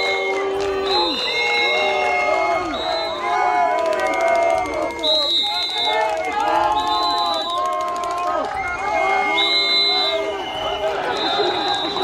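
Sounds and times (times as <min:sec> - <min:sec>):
high whistle: 0:00.0 - 0:07.8, 0:08.6 - 0:12.0
crowd booing and shouting: 0:00.0 - 0:12.0.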